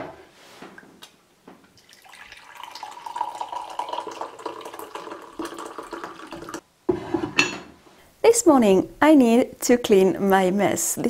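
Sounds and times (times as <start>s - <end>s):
liquid pouring into mug: 1.8s - 6.6s.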